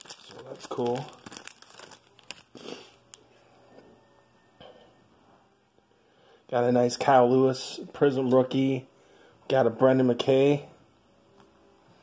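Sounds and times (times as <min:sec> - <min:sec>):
plastic rustling: 0:00.0 - 0:03.0
plastic card sleeves crinkling: 0:00.0 - 0:03.2.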